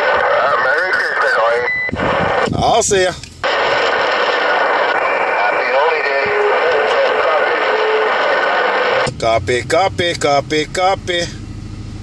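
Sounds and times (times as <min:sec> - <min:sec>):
radio static hiss: 0:00.0 - 0:11.3.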